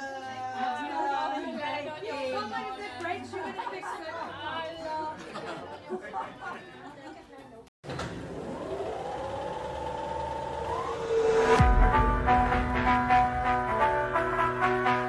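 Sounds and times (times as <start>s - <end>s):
smooth rising tone: 8.2s - 13.7s
background music: 10.6s - 15.0s.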